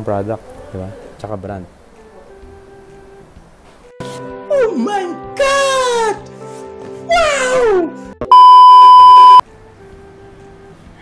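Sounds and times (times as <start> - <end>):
test tone beep: 8.3 - 9.4.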